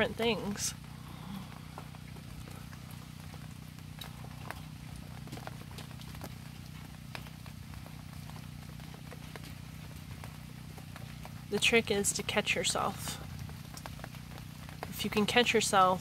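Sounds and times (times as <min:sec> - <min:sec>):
rain: 0:00.0 - 0:16.0
steady low hum: 0:00.0 - 0:16.0
water drops dripping and ticking: 0:00.0 - 0:16.0.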